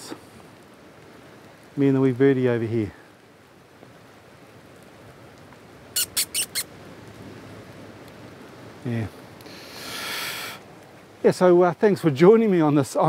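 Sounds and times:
faint steady hiss: 0:00.0 - 0:13.0
small bird chirping: 0:06.0 - 0:06.7.

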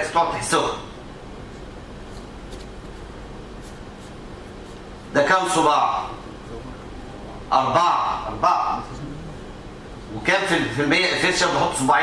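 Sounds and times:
room noise: 0:00.0 - 0:12.0
faint scratching or rustling: 0:01.6 - 0:05.1.

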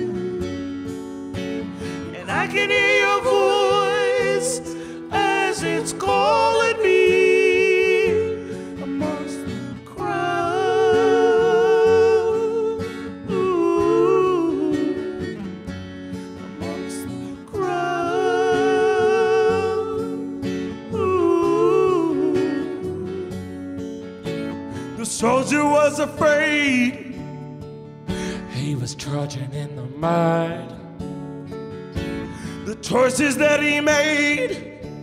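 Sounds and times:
person singing wordless melody: 0:00.0 - 0:15.7, 0:16.3 - 0:23.7, 0:24.8 - 0:27.3, 0:28.1 - 0:30.8, 0:32.3 - 0:35.0
acoustic guitars playing: 0:00.0 - 0:35.0.

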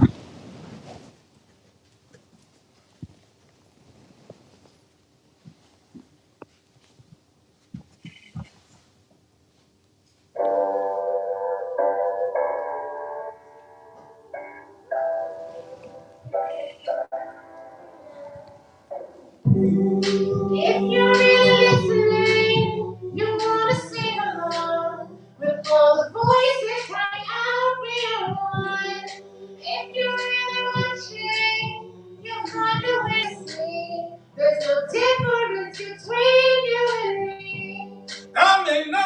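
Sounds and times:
woman singing into a microphone: 0:20.0 - 0:38.1.

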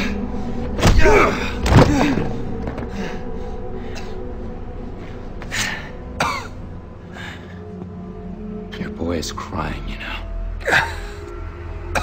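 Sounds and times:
background music score: 0:00.0 - 0:12.0
pained grunt: 0:00.8 - 0:02.3.

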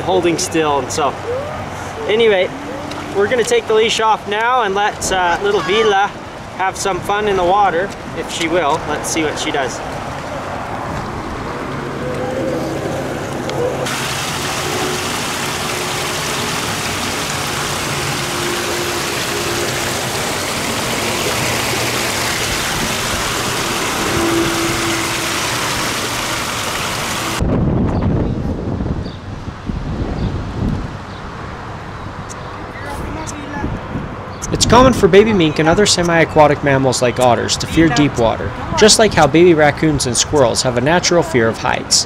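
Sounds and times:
water rushing over rocks: 0:04.9 - 0:27.4.

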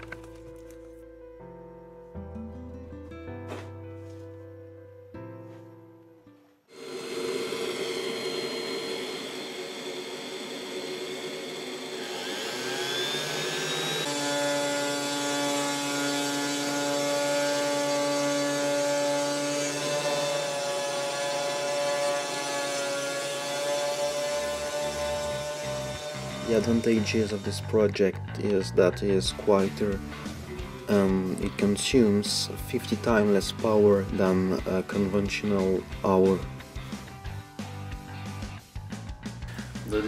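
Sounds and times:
dust vacuum fan whine: 0:06.7 - 0:27.7
cnc machine milling wood: 0:06.8 - 0:27.6.

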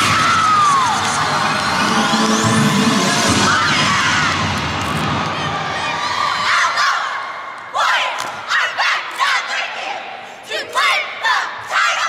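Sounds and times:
group shouting a cheer: 0:00.0 - 0:12.0.

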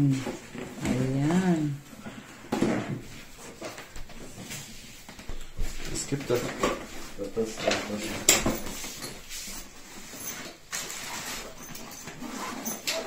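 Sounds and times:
rustling of stiff plastic and fabric: 0:00.0 - 0:13.0.

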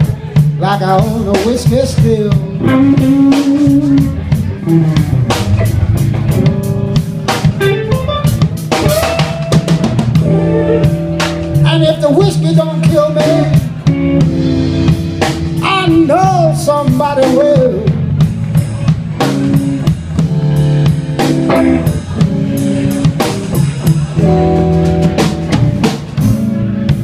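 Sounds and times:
drum kit steady beat: 0:00.0 - 0:27.0
electric guitar lead: 0:00.0 - 0:27.0.

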